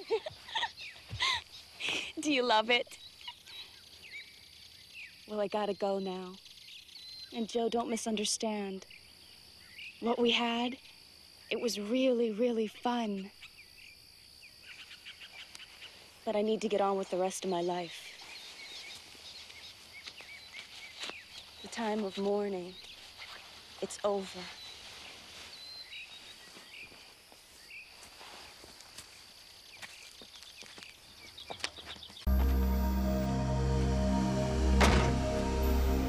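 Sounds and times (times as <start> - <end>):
steady outdoor hiss: 0.0 - 31.4, 32.3 - 36.0.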